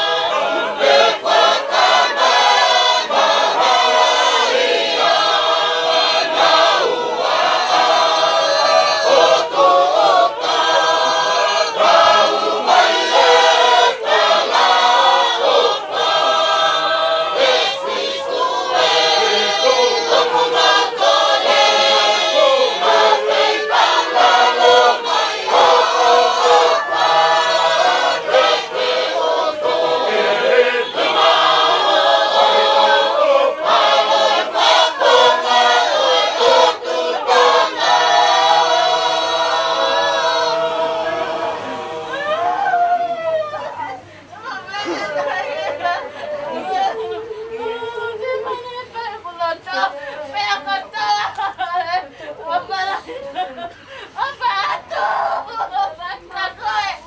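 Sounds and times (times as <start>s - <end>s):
choir singing in harmony: 0.0s - 43.2s, 43.8s - 57.0s.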